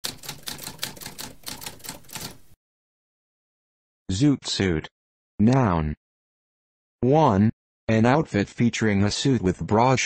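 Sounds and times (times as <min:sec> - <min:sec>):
typewriter typing: 0:00.0 - 0:02.6.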